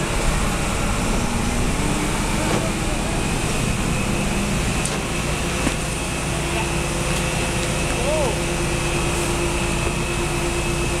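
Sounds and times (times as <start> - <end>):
fire truck pumps rushing: 0.0 - 11.0
steady whine: 0.0 - 11.0.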